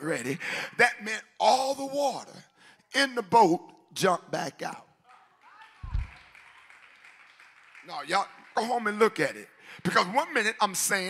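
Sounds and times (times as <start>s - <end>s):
low thump: 5.8s - 6.1s.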